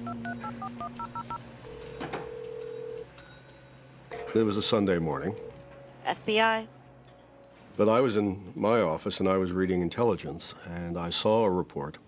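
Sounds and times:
telephone ringing tone: 0.0s - 3.2s
faint low music: 0.0s - 12.0s.

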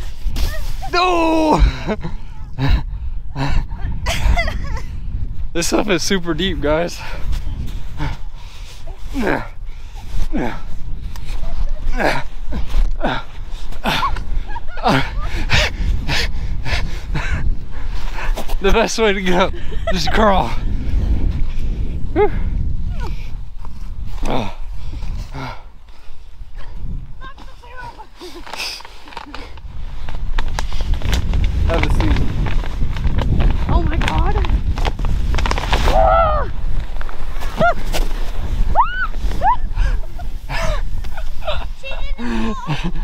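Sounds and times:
wind buffeting microphone: 0.0s - 43.0s
man laughing: 1.0s - 2.8s, 4.1s - 4.9s, 13.8s - 15.6s, 19.4s - 20.6s, 39.7s - 43.0s.

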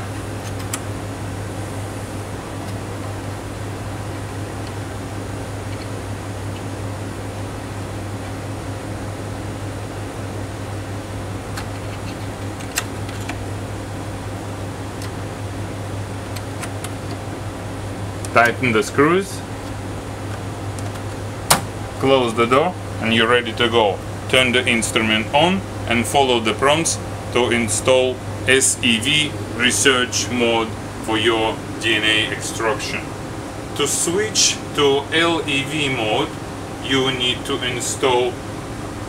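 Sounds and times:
fan hum: 0.0s - 39.0s.

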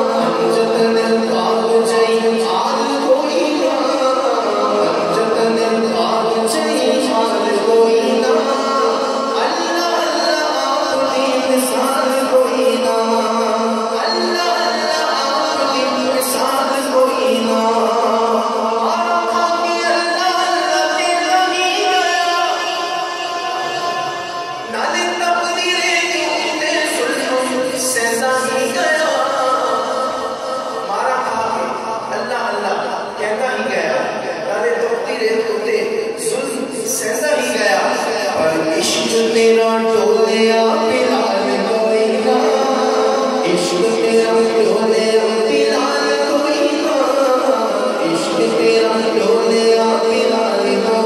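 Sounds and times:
man singing devotional song: 0.0s - 51.0s.

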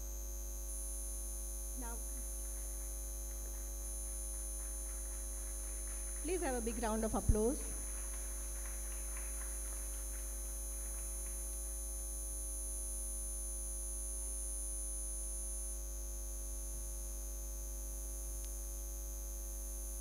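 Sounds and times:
electrical mains hum: 0.0s - 20.0s
faint claps: 2.0s - 12.1s.

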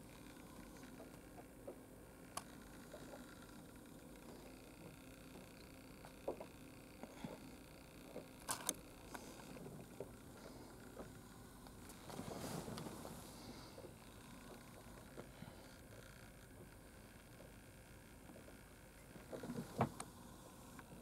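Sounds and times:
camera handling clicks and taps: 8.5s - 8.8s.

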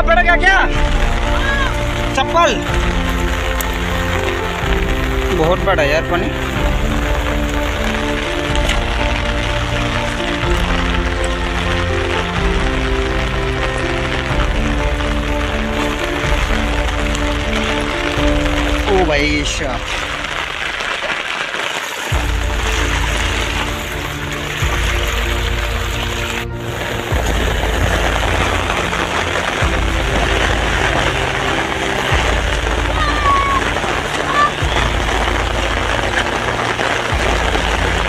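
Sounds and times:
music with deep bass line: 0.0s - 20.5s, 22.1s - 38.0s
steady hiss of rain: 0.0s - 38.0s.

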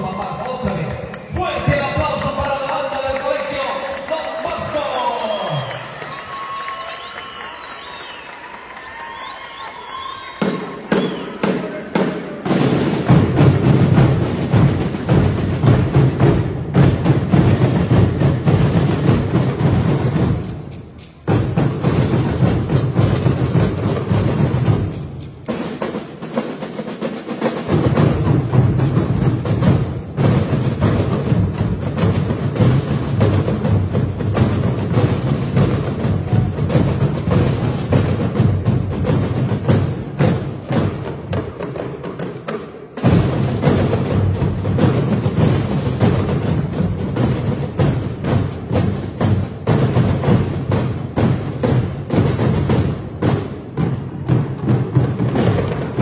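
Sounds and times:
marching drum line cadence: 0.0s - 56.0s.

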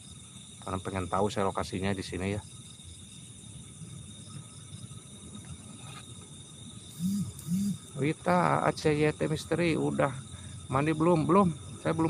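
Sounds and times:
background hiss: 0.0s - 12.0s
night insects chirring: 0.0s - 12.0s.

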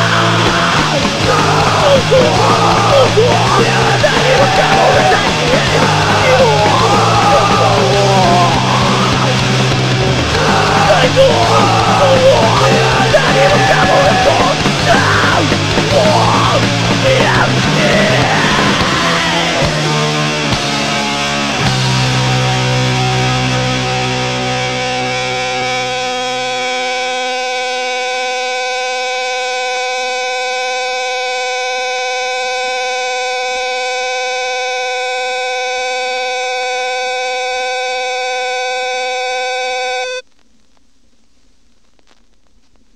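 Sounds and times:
punk band final chord: 0.0s - 30.8s
electric guitar feedback: 0.0s - 40.3s
faint record hiss: 40.2s - 42.9s.

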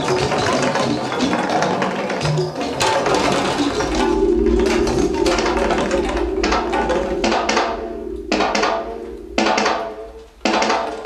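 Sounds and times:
low held note: 3.1s - 10.4s
short pitched notes: 3.3s - 10.4s.

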